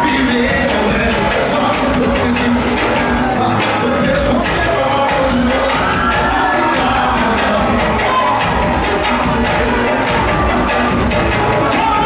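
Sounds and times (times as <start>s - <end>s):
crowd cheering and singing: 0.0s - 12.0s
drum and hand percussion beat: 0.0s - 12.0s
live band music: 0.0s - 12.0s.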